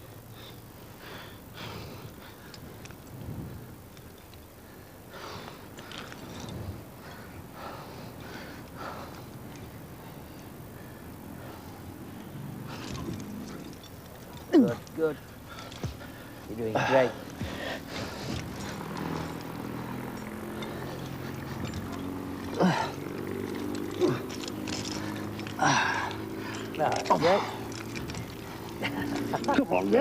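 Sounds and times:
low background hiss: 0.0s - 30.0s.

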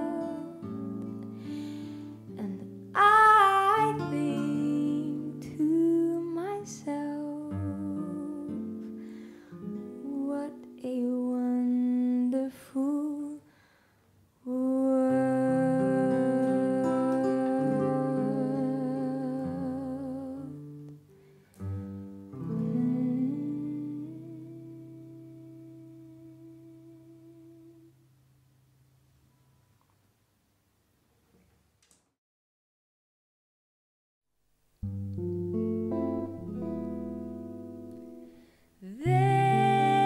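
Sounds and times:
woman singing jazz ballad: 0.0s - 0.9s, 2.2s - 8.8s, 9.9s - 13.5s, 14.4s - 20.6s, 22.4s - 27.9s, 38.8s - 40.0s
plucked acoustic guitar: 0.0s - 10.8s, 15.5s - 26.6s, 34.8s - 40.0s.

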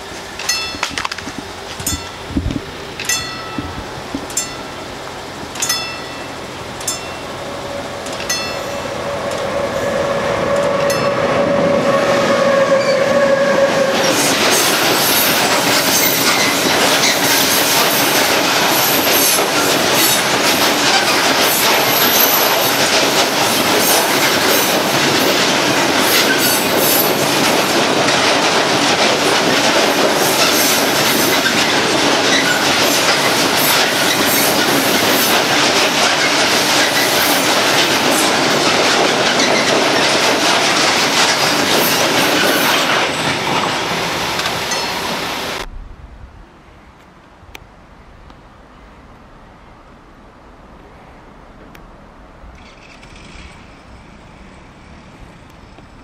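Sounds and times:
train wheels rumbling on rails: 0.0s - 45.9s, 52.4s - 56.0s
high wheel squeals: 5.6s - 20.3s, 30.4s - 35.4s.

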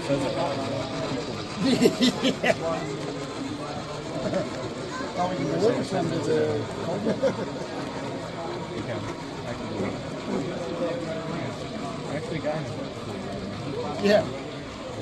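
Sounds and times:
indistinct conversation: 0.0s - 15.0s.

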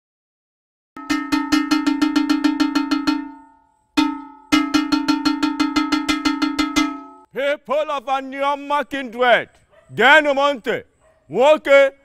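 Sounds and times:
iron gong beaten rapidly: 1.0s - 7.3s.

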